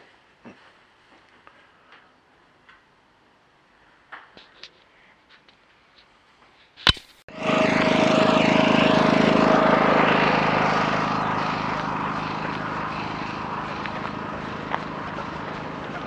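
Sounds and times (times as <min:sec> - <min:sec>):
motor running at speed: 0:07.3 - 0:16.0.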